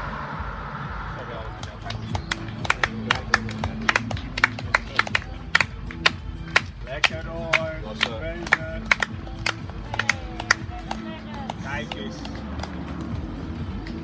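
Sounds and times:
background music: 0:00.0 - 0:14.0
people clapping hands: 0:01.5 - 0:14.0.

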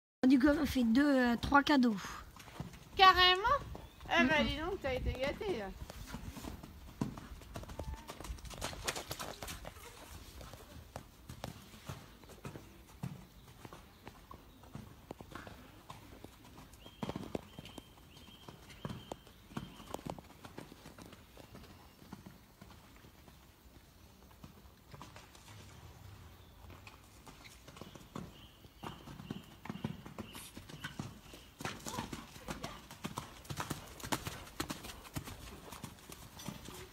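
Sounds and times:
horse hoofbeats on wet sand: 0:00.4 - 0:36.9.

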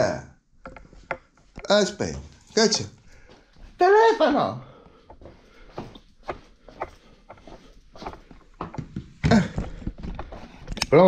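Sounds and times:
footsteps: 0:00.7 - 0:10.8.

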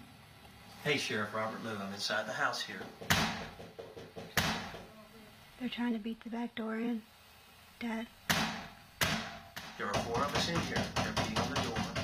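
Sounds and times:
heavy blows on door: 0:08.3 - 0:12.0.

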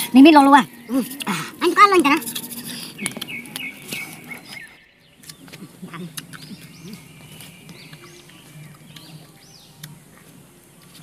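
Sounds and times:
bird singing faintly: 0:00.0 - 0:11.0.

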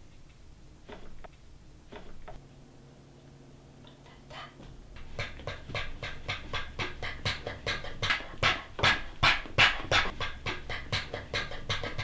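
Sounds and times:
person panting like a dog: 0:05.0 - 0:12.0.

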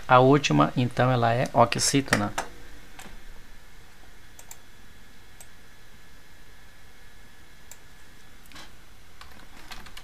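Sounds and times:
computer keyboard typing: 0:09.2 - 0:10.0.

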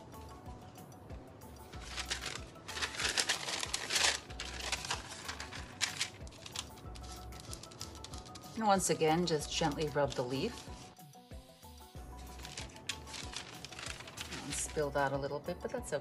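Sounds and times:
soft background music: 0:00.0 - 0:16.0
paper towel crinkling: 0:01.8 - 0:11.0, 0:12.2 - 0:15.1.

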